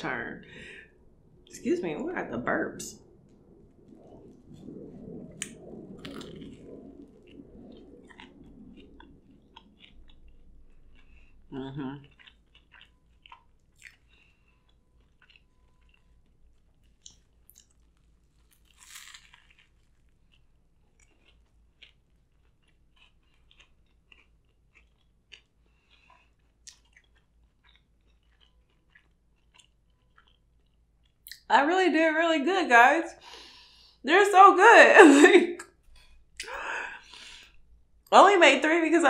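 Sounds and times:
chewing and crunching: 2.9s - 31.5s.

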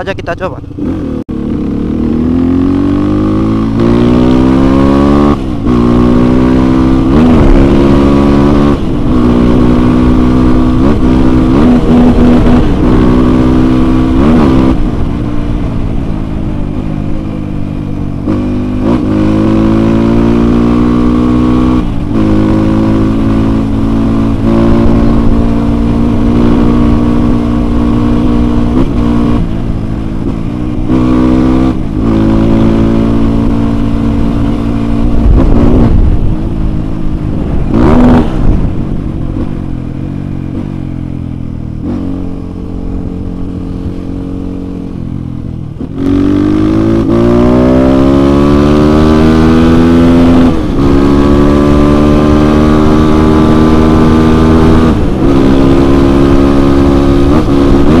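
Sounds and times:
motorcycle engine accelerating: 0.0s - 58.0s
wind rumble on microphone: 20.4s - 58.0s.

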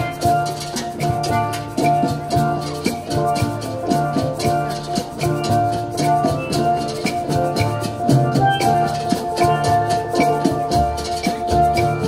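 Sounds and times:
light percussion beat: 0.0s - 12.0s
steel drum ensemble: 0.0s - 12.0s.

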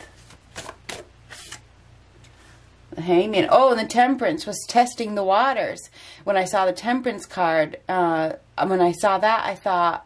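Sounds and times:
cards sliding and snapping: 0.0s - 1.6s.

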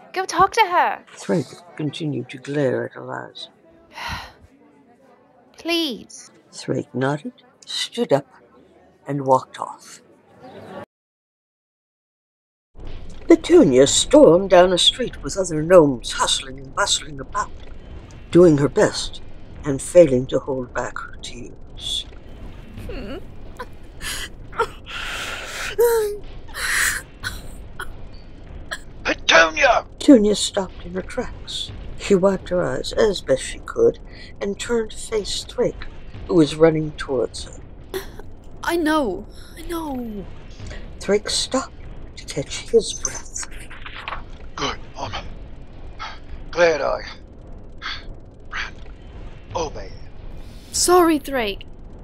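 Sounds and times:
woman sobbing: 22.8s - 23.2s, 24.0s - 27.5s, 38.0s - 38.2s
woman whimpering: 22.8s - 23.2s, 24.0s - 27.5s, 38.0s - 38.2s.

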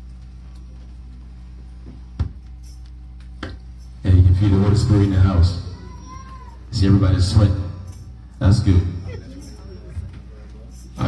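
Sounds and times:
man's voice over pa system: 4.0s - 5.8s, 6.7s - 9.2s.

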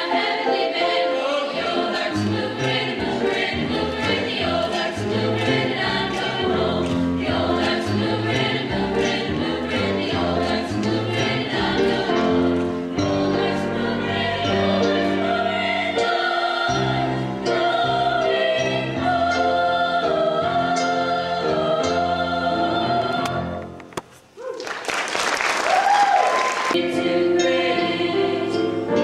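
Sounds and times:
choir singing in harmony: 0.0s - 23.7s, 26.7s - 29.0s.

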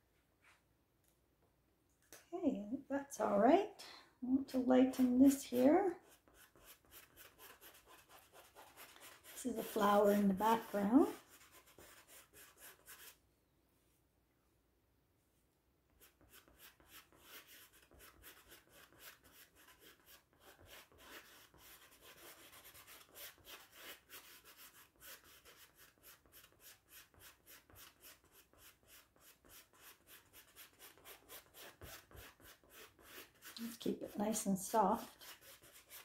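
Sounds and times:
paintbrush scratching on canvas: 4.5s - 13.2s, 16.0s - 36.0s.

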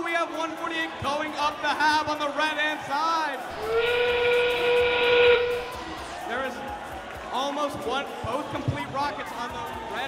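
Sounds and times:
steam train whistle over speakers: 3.5s - 5.8s.

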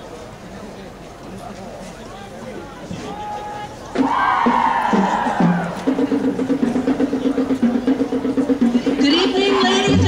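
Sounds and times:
marching band horns: 3.0s - 10.0s.

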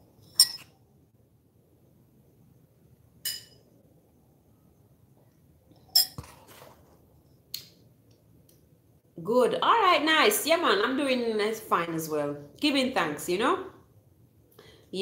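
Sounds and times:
ceramic mug clinking: 0.3s - 0.7s, 3.2s - 3.7s, 5.9s - 6.3s.

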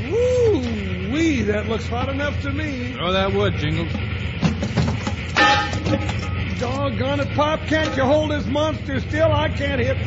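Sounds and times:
low rumble of running train: 0.0s - 10.0s
loud ringing metal hit: 3.9s - 6.8s, 7.5s - 8.5s
knocks: 4.0s - 6.4s.

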